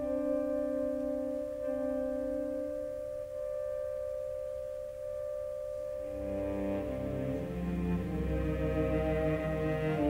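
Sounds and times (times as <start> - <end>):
soft sustained woodwind note: 5.8 - 10.0
low orchestral note: 6.0 - 10.0.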